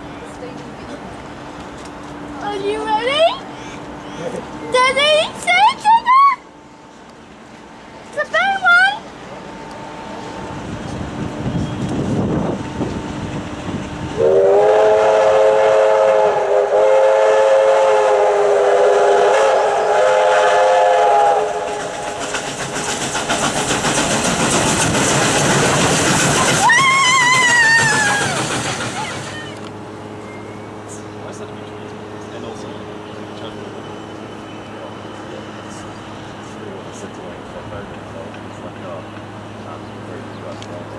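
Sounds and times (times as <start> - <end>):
steam locomotive exhaust chuffs: 1.1 - 40.9
train wheel clatter: 7.4 - 14.2, 21.2 - 40.9
steam whistle blast: 14.2 - 21.7.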